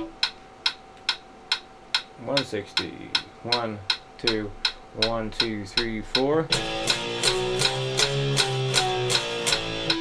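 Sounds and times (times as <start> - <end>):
metronome clicks: 0.0 - 10.0
electric guitar power chords: 6.5 - 10.0.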